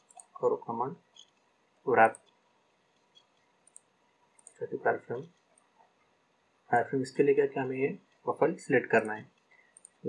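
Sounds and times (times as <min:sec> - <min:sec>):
computer mouse clicks: 0:00.0 - 0:00.4, 0:01.1 - 0:05.7, 0:09.0 - 0:10.0
man speaking: 0:00.4 - 0:01.0, 0:01.9 - 0:02.3, 0:04.6 - 0:05.3, 0:06.7 - 0:09.3.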